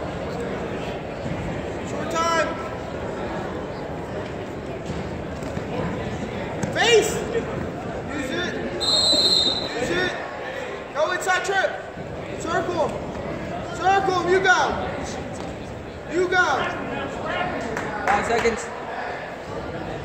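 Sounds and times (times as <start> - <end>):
people shouting short calls: 8.8 - 10.2.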